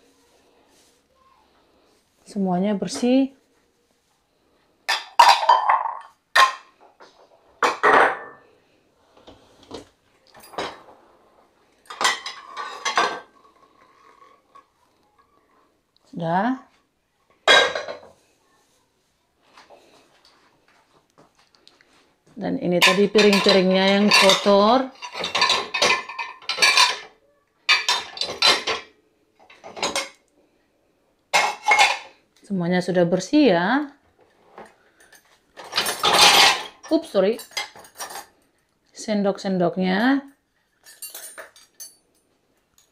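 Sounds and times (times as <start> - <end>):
dishes clattering on a wire rack: 4.9 - 6.7, 7.6 - 8.4, 11.9 - 13.3, 17.5 - 18.1, 22.8 - 27.1, 27.7 - 30.2, 31.4 - 32.1, 35.6 - 38.3
ceramic dishes clinking: 22.8 - 27.1, 27.7 - 28.9.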